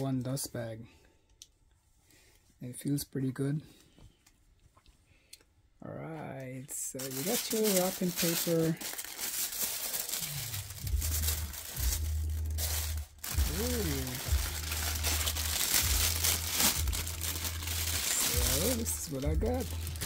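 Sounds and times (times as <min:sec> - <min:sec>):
tissue paper and plastic crinkling: 0:06.8 - 0:20.0
person humming: 0:13.2 - 0:14.8.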